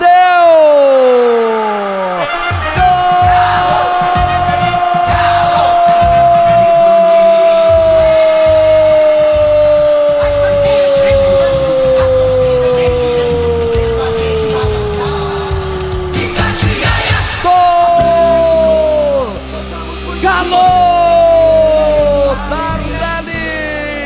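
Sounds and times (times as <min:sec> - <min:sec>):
commentator's long goal cry: 0:00.0 - 0:19.4.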